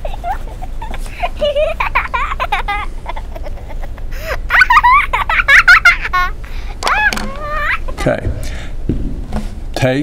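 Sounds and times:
person laughing: 0.0 - 6.4.

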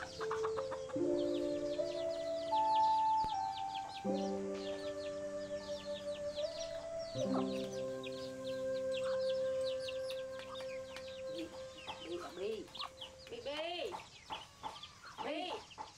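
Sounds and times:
chicken clucking: 0.0 - 2.2, 2.8 - 15.9
rising and falling bird call: 0.0 - 13.5
background music with held notes: 0.0 - 15.2
chicks peeping: 0.0 - 15.9.

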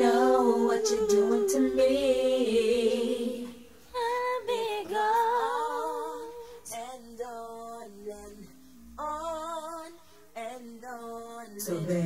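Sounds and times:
woman singing a cappella: 0.0 - 12.0.

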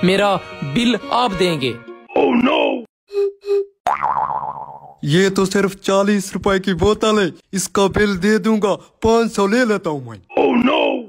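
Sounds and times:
springy cartoon boing: 3.8 - 5.0.

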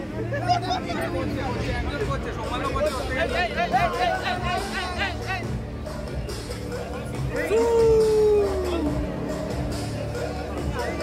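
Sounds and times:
crowd noise: 0.0 - 11.0
music: 0.0 - 11.0.

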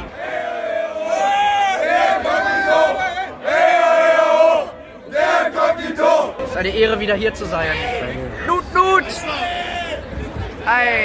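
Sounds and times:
crowd of men cheering and chanting: 0.0 - 6.4, 7.7 - 10.2.

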